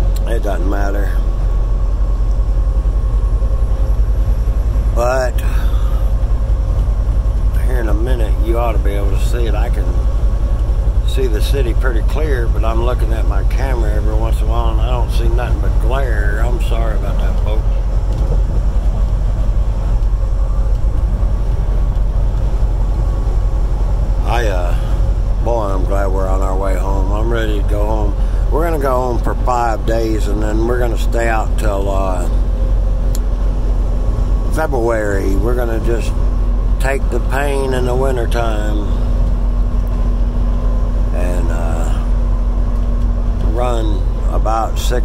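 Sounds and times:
truck engine and road rumble: 0.0 - 45.0.

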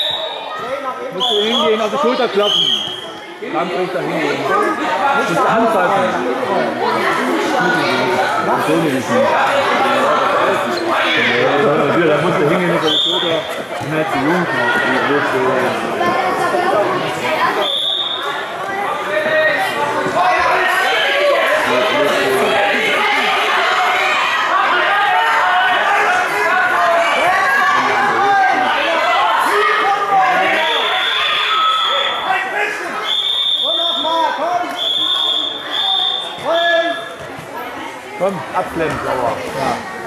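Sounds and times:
people talking in a large hall: 0.0 - 40.0
high whistle-like tone: 17.6 - 18.3, 33.0 - 36.4.

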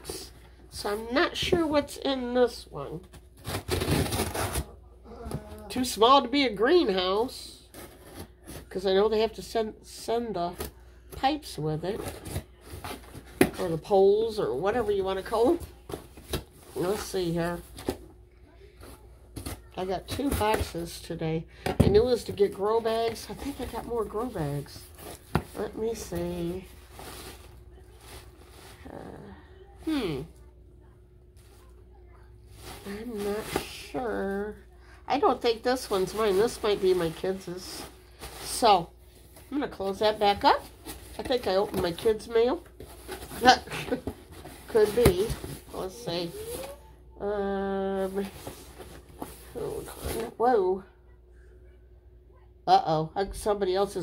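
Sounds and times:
plastic packaging rustling: 22.2 - 28.9, 35.6 - 46.8.

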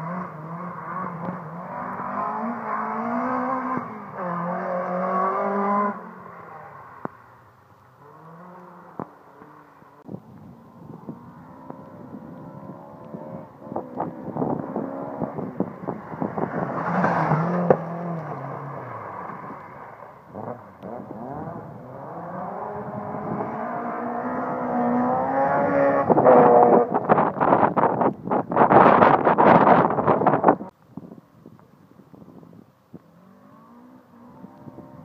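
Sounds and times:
rally car engine revving: 0.0 - 7.1, 8.0 - 9.8, 10.9 - 30.7.

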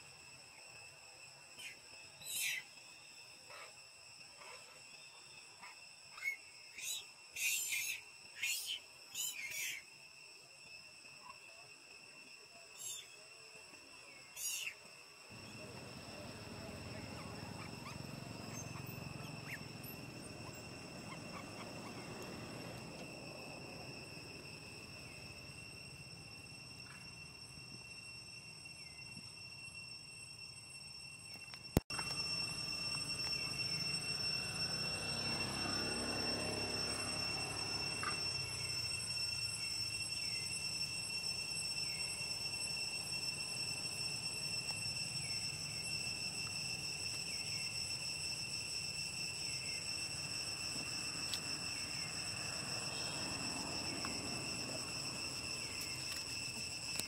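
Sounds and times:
insects droning: 0.0 - 57.0
low outdoor hum: 0.0 - 57.0.

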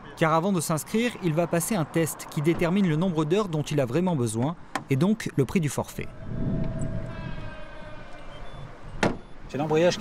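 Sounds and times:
traffic rumble: 0.0 - 10.0
steady whining tone: 6.1 - 9.4.

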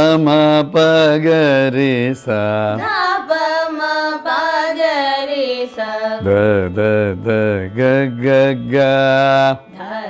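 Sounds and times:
man singing with gliding ornaments: 0.0 - 10.0.

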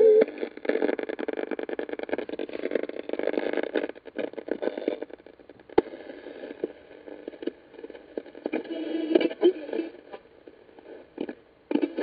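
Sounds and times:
radio static crackling: 0.0 - 12.0.

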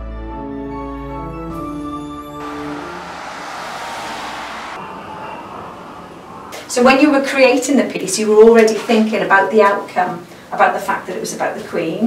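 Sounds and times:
bus driving past: 2.2 - 8.6.

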